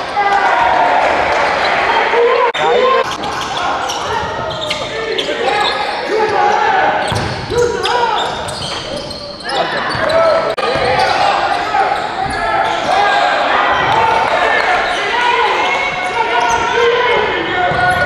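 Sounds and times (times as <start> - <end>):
people shouting and talking: 0.0 - 18.0.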